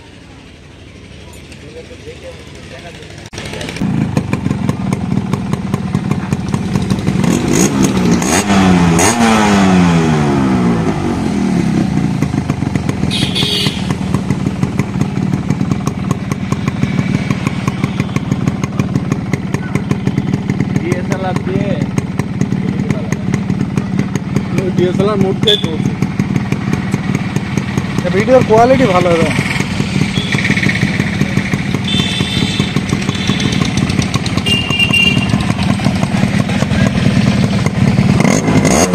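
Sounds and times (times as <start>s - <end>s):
two-stroke motorcycle engine revving: 0.6s - 38.9s.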